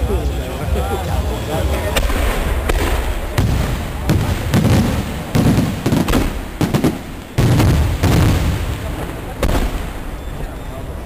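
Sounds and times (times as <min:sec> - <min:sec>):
low rumbling: 0:00.0 - 0:11.0
fireworks bangs and booms: 0:01.9 - 0:10.6.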